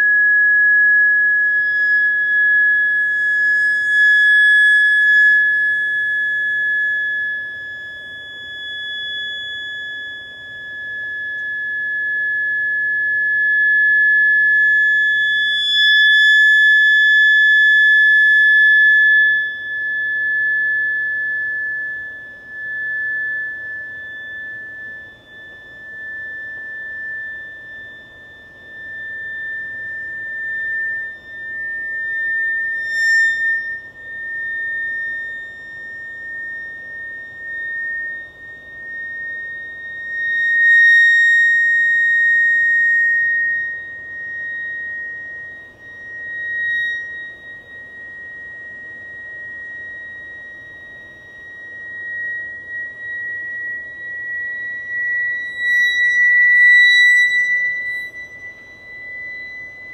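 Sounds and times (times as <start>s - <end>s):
high steady tone rising slowly: 0.0s - 59.9s.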